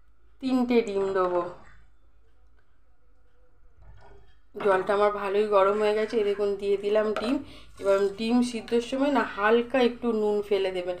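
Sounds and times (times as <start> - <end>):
woman talking: 0.4 - 1.7, 4.6 - 11.0.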